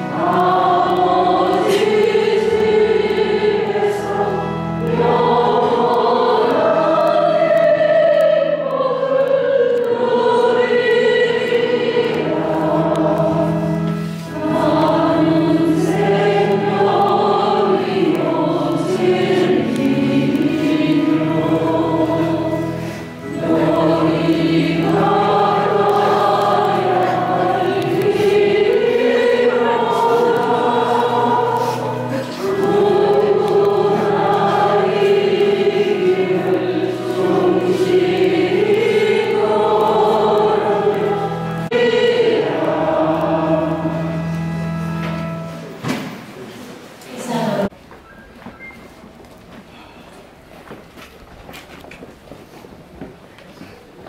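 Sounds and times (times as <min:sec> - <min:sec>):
choir singing a slow hymn: 0:00.0 - 0:47.7.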